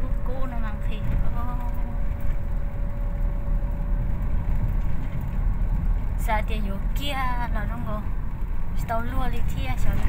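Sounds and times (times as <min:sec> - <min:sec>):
car cabin road rumble: 0:00.0 - 0:10.0.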